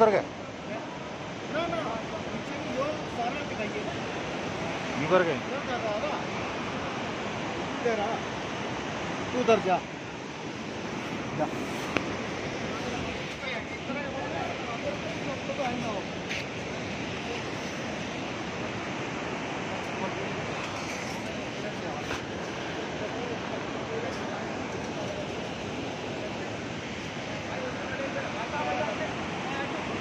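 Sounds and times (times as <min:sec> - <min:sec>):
steady rushing noise: 0:00.0 - 0:30.0
faint voices: 0:10.7 - 0:30.0.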